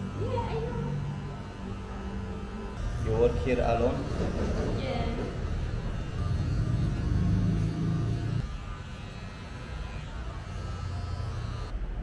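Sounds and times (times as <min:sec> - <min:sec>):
electric hair clippers buzzing: 0:00.0 - 0:11.7.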